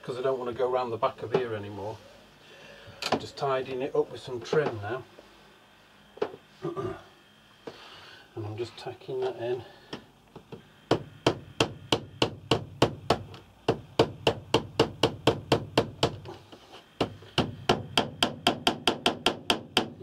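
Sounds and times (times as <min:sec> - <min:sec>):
hammer tapping tacks into wood: 0:10.4 - 0:16.3, 0:17.0 - 0:20.0.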